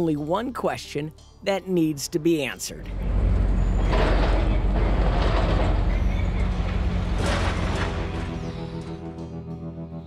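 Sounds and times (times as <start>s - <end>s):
diesel engine low rumble: 2.8s - 9.8s.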